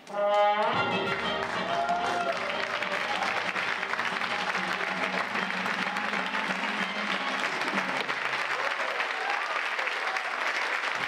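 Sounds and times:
brass band closing chord: 0.1 - 7.4
audience applause: 0.7 - 11.0.

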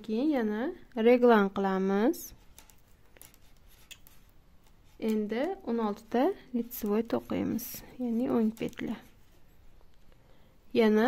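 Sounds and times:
knitting needles clicking: 2.4 - 9.1.

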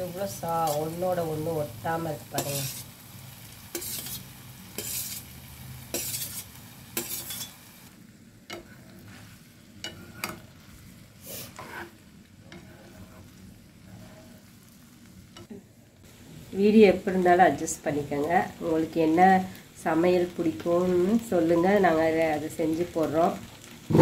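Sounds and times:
food sizzling lightly: 0.0 - 24.0
metal spatula scraping steel plate: 2.4 - 2.9, 3.7 - 5.3, 5.9 - 7.6, 8.5 - 10.4, 11.2 - 14.5
spatula tapping and stirring in pan: 3.6 - 7.6, 8.4 - 9.2, 9.8 - 10.6, 11.5 - 13.4, 15.3 - 15.6.

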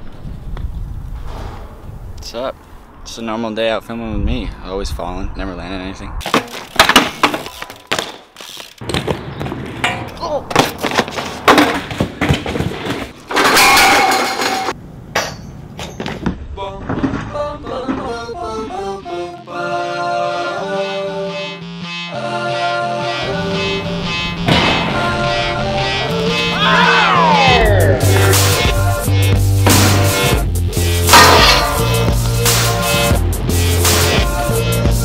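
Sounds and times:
bike clattering on concrete: 6.2 - 18.1
harsh scrape: 31.0 - 32.8.

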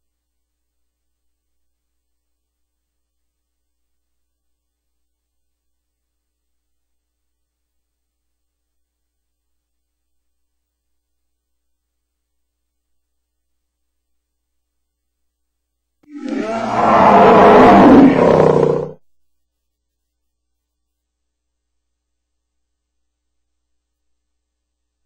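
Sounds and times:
gritty animal roar: 16.1 - 19.0.

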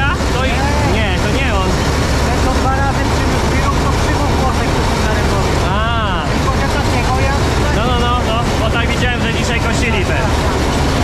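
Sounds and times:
combine harvester engine drone: 0.0 - 11.0.

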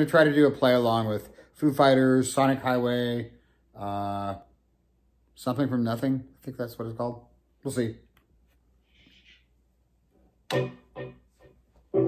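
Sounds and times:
electric guitar notes ringing: 10.5 - 12.0.

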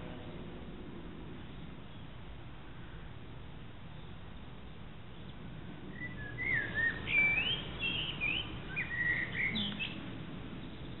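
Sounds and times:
faint low background hum: 0.0 - 11.0
songbird singing high whistled notes: 5.9 - 10.0.

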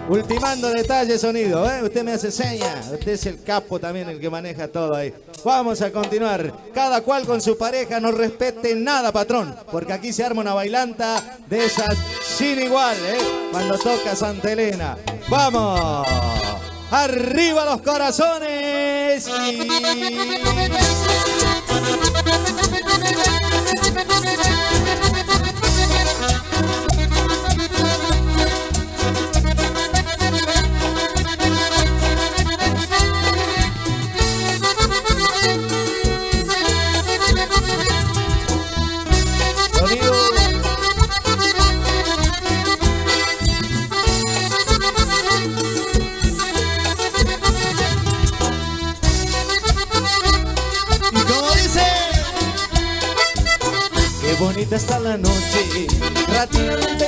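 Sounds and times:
accordion-led latin dance music: 0.0 - 57.0.

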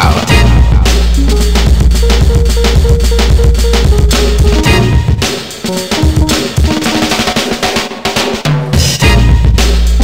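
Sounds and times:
breakbeat drum pattern: 0.0 - 10.0.

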